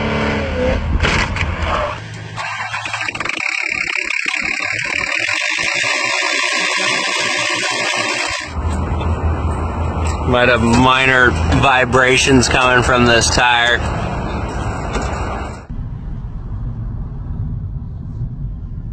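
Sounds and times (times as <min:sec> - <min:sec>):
car engine revving in burnout: 0:01.7 - 0:08.6
engine belt drive turning: 0:02.2 - 0:08.6
low hum: 0:13.8 - 0:18.9.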